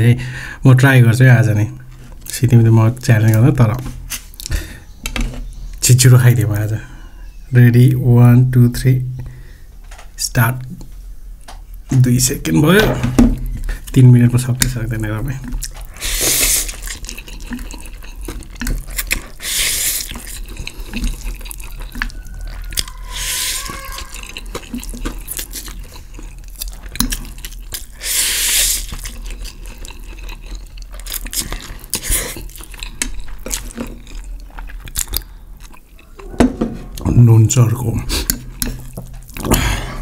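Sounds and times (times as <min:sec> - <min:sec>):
chewing: 0:13.5 - 0:36.2, 0:38.2 - 0:39.7
noodles being slurped: 0:15.4 - 0:22.2, 0:22.8 - 0:33.8.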